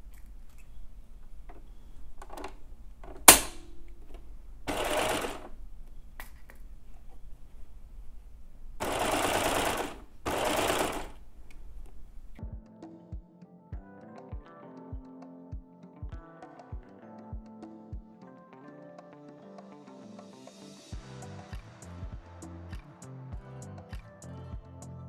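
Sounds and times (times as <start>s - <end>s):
sharp click: 2.2s - 4.2s
serger sewing machine running: 4.7s - 5.6s, 8.8s - 11.2s.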